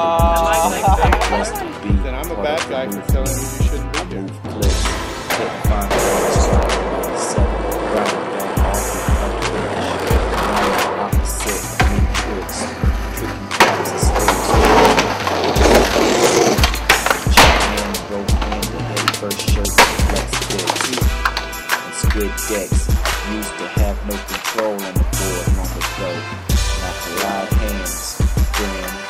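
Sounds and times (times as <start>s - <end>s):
hip-hop beat with deep bass: 0.0s - 29.0s
skateboard wheels rolling on concrete: 5.2s - 25.9s
skateboard popping and landing: 13.0s - 19.2s, 19.8s - 22.2s.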